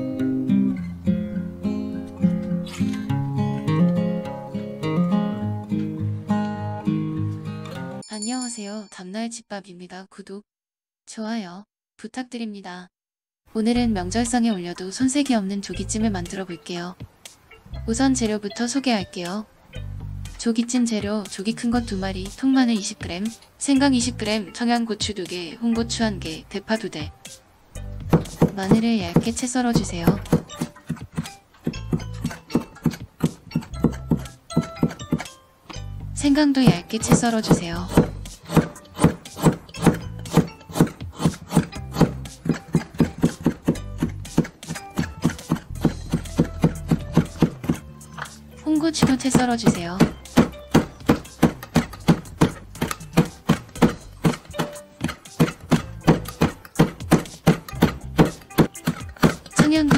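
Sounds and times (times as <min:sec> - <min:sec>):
light background music: 0:00.0 - 0:08.2, 0:13.5 - 0:59.9
knife tapping a cutting board: 0:28.0 - 0:35.3, 0:36.6 - 0:47.8, 0:49.0 - 0:59.9.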